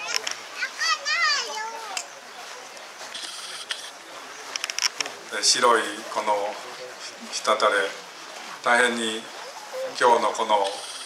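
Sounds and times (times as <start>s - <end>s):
young child calling out: 0.0s - 2.0s.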